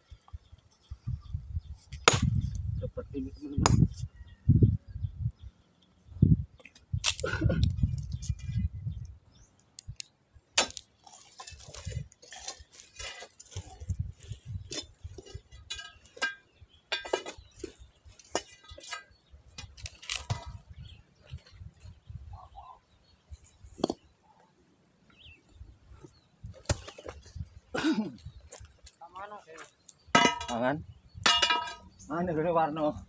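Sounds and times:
crowbar clinking on stone: 0:15.3 - 0:17.4, 0:30.2 - 0:30.6, 0:31.3 - 0:31.9.

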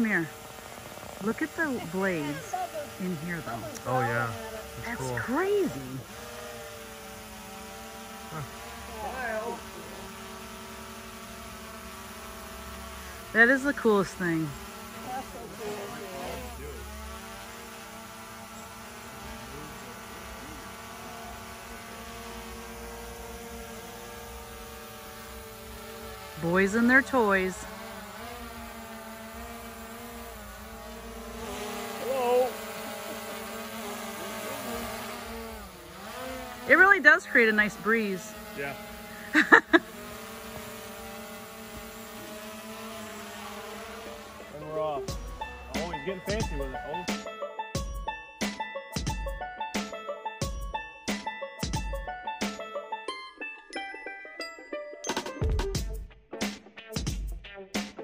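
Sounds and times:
drone propellers humming: 0:00.0 - 0:52.7.

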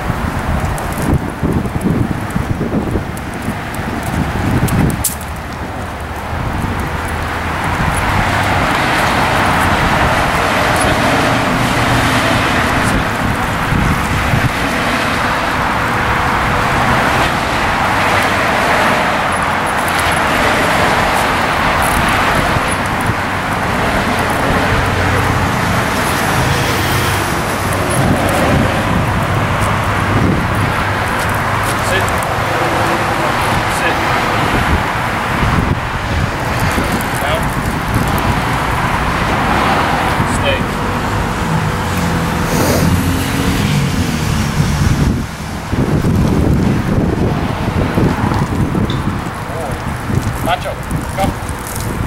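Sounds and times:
road traffic noise: 0:00.0 - 0:52.0.

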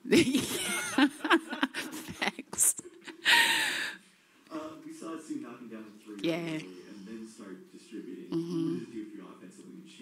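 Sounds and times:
woman laughing breathily: 0:03.1 - 0:04.0
soft murmured voice: 0:04.5 - 0:10.0.

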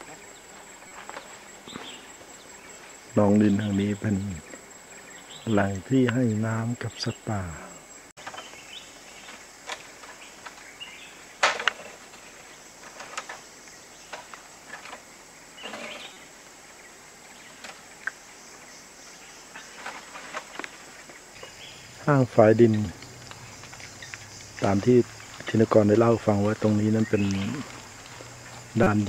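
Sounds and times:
high insect drone: 0:00.0 - 0:29.0.

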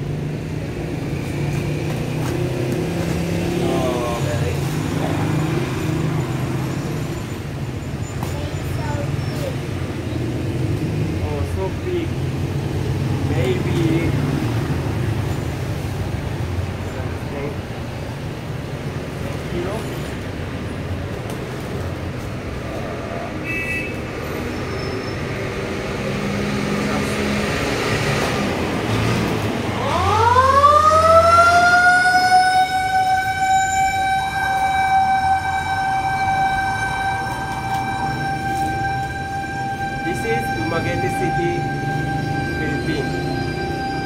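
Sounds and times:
siren wailing: 0:29.7 - 0:44.0.

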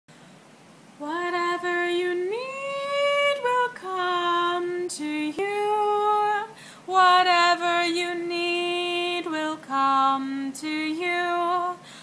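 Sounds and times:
woman singing unaccompanied: 0:01.0 - 0:12.0.

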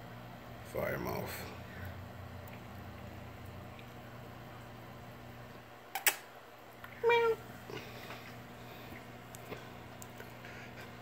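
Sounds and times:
aquarium equipment hum: 0:00.0 - 0:11.0
cat meowing: 0:07.0 - 0:07.4.

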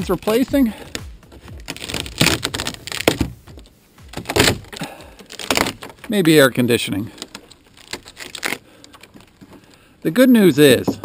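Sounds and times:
plywood cracking and splintering: 0:00.0 - 0:11.0.

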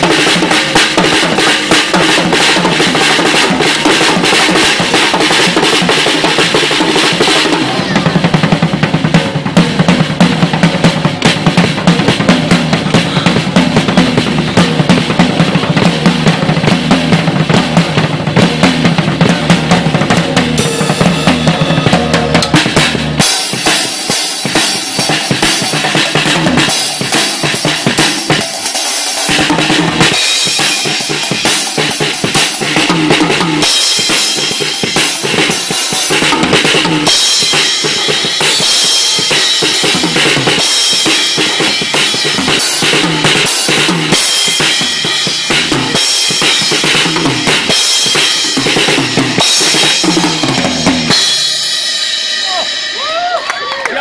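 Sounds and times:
cymbals crashing: 0:00.0 - 0:53.4
fast drum solo: 0:00.0 - 0:53.4.

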